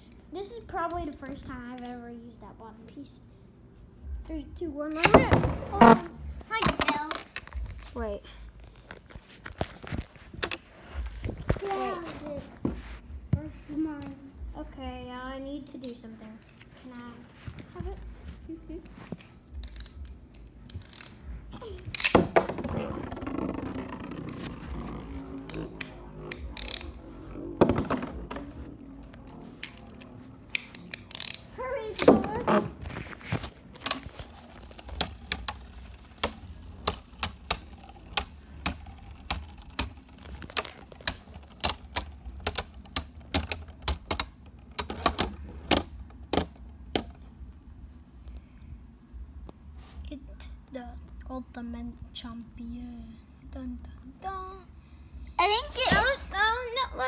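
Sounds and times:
plastic knocks and rattles: 27.6 - 28.7, 33.7 - 47.3
spinning tops clacking: 33.9 - 45.7.

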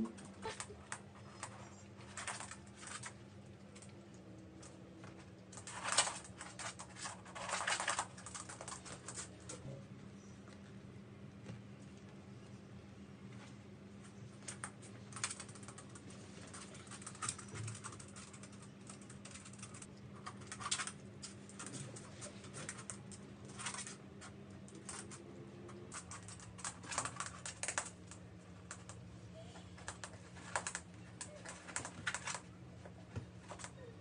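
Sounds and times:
faint steady hum: 0.0 - 34.0.

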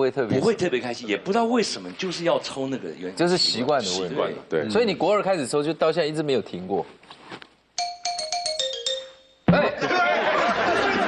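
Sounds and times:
descending comic bell chime: 7.8 - 9.5.

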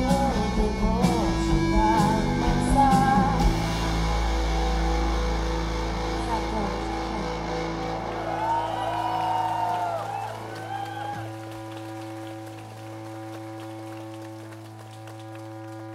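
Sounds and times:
electric guitar and bass ringing: 0.0 - 15.9
faint scattered clapping: 8.9 - 15.9.

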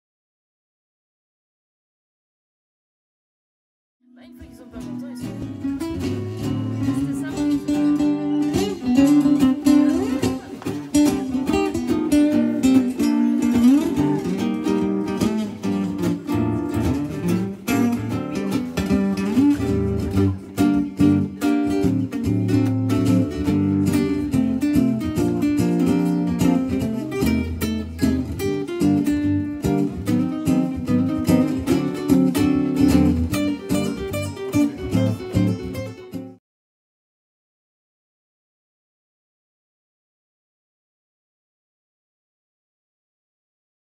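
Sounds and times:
guitar bass line: 4.1 - 36.4
nylon-string guitar plucking melody: 4.1 - 36.4.

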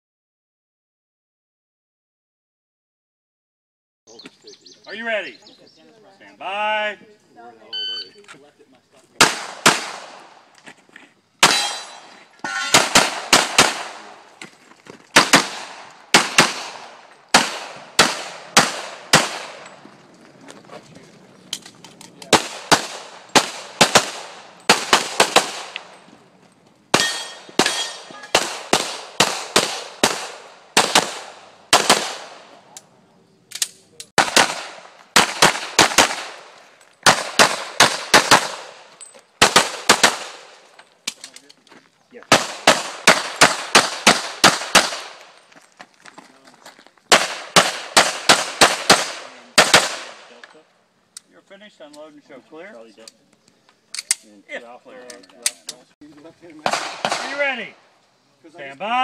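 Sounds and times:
rapid pistol fire: 9.2 - 10.3, 12.7 - 14.1, 15.2 - 19.6, 22.3 - 25.8, 26.9 - 32.4, 34.2 - 38.8, 39.4 - 40.5, 42.3 - 45.2, 47.1 - 50.2, 56.6 - 57.4.

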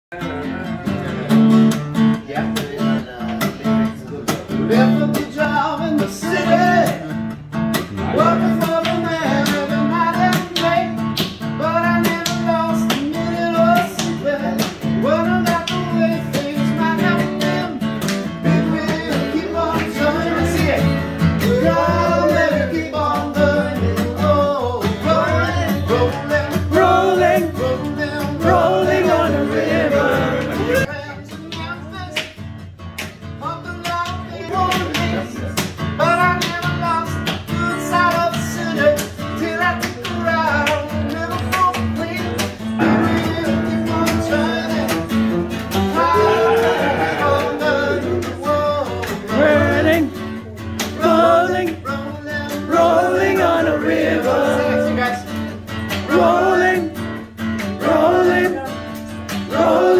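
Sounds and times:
acoustic guitar strumming: 0.1 - 59.9
men singing: 4.4 - 32.1, 33.4 - 59.9.

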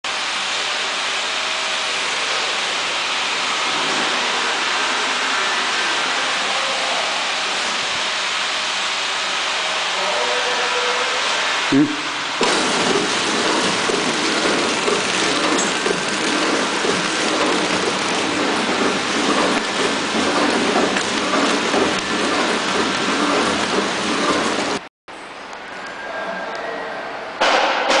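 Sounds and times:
wrapping machine running: 11.7 - 24.9.

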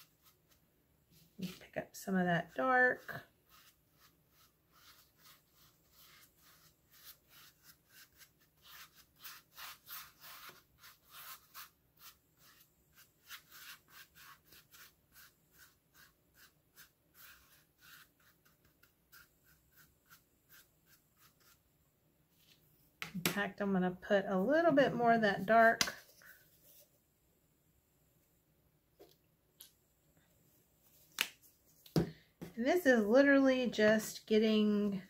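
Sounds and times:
paintbrush scratchy strokes: 0.0 - 0.6, 2.4 - 21.6, 26.2 - 26.9.

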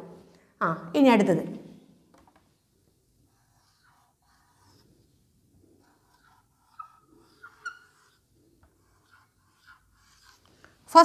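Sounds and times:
marker squeaking on whiteboard: 3.3 - 10.5.

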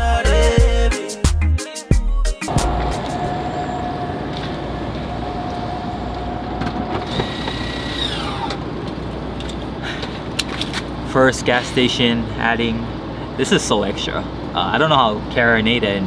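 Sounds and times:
traffic rumble: 2.5 - 16.0.

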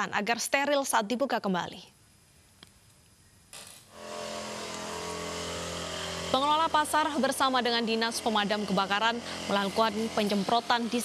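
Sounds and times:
small engine running steadily: 4.0 - 11.0.

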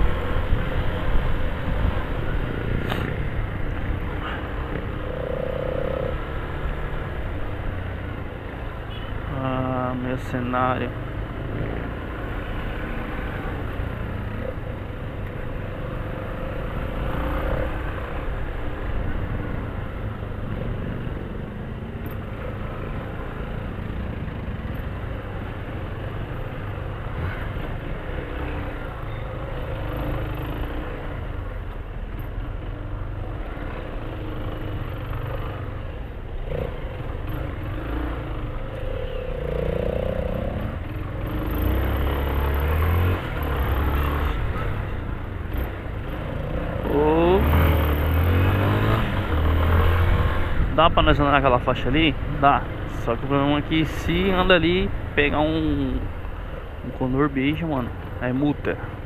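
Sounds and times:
surrounding traffic: 0.0 - 59.0.

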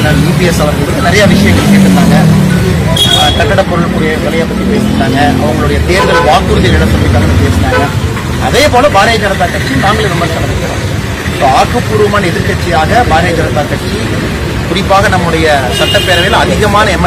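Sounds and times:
man speaking: 0.0 - 17.0
road traffic hum: 0.0 - 17.0.

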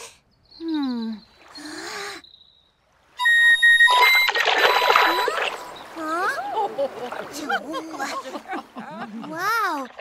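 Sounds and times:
water splashing: 2.9 - 10.0
high ocarina notes: 3.2 - 5.6.

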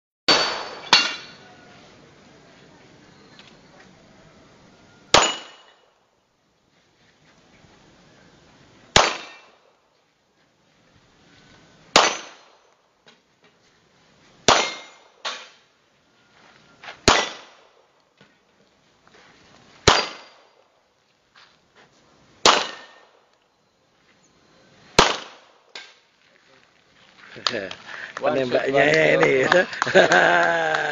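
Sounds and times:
handgun shots: 9.0 - 9.5, 17.0 - 17.6, 19.8 - 20.4, 22.4 - 23.0, 25.0 - 25.9.

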